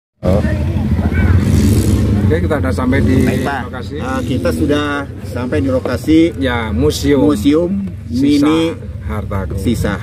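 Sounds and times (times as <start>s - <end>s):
jeep engine rumbling: 0.2s - 10.0s
people's voices: 0.2s - 10.0s.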